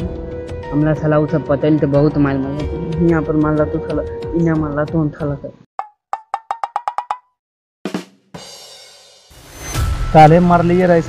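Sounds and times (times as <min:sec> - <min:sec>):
wood-block knocks with ringing tone: 0:05.8 - 0:07.4.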